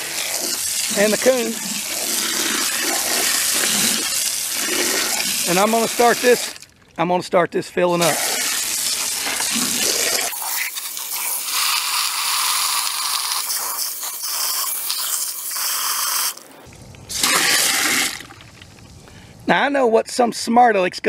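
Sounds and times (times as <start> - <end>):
hose water spraying into cooler: 0.0 - 6.6, 8.0 - 18.5.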